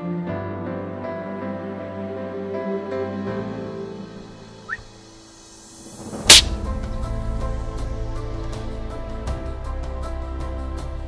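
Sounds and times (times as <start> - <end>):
soft background music: 0.0 - 11.0
air rifle shot: 6.3 - 6.6.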